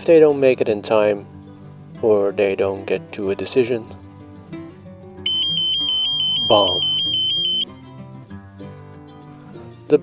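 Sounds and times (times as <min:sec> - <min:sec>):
background music: 0:00.0 - 0:10.0
high rapidly pulsing beep: 0:05.3 - 0:07.6.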